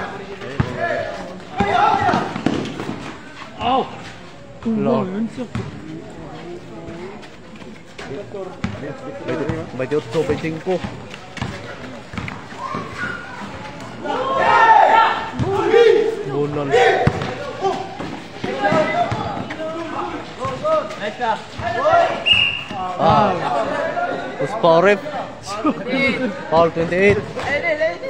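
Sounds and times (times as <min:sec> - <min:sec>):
voices calling out: 0:00.0 - 0:28.0
sneaker squeaks and play noise: 0:05.4 - 0:14.0, 0:16.9 - 0:23.4
basketball bouncing on hard court: 0:05.5 - 0:05.8, 0:10.8 - 0:12.4, 0:17.0 - 0:17.4.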